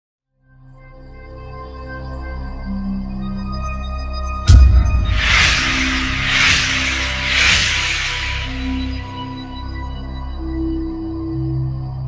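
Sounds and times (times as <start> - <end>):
whooshes: 4.5 - 9.4.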